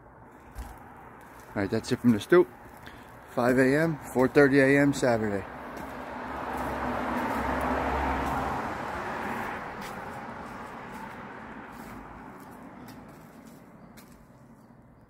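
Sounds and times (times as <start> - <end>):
vehicle driving past: 3.8 - 14.6.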